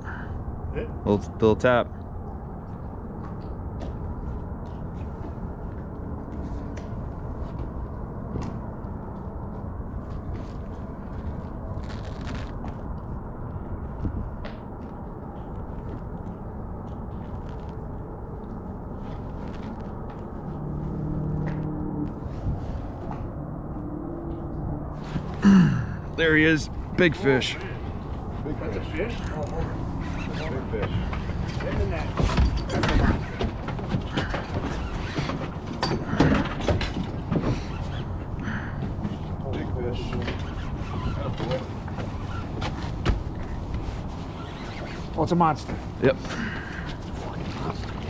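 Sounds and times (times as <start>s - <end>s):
outdoor background noise: 0.0s - 48.0s.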